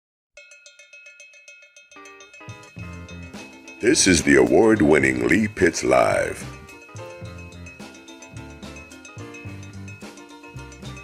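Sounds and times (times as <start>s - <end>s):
bell-like metallic percussion strikes: 0.4s - 11.0s.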